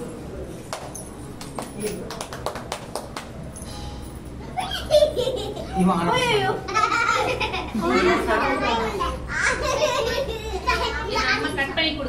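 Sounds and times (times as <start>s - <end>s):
children and adults talking: 4.3s - 12.0s.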